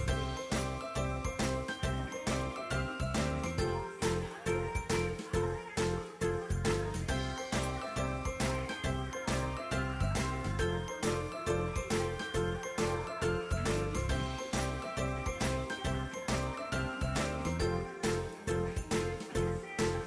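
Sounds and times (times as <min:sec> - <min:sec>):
pop music from tv speakers: 0:00.0 - 0:20.0.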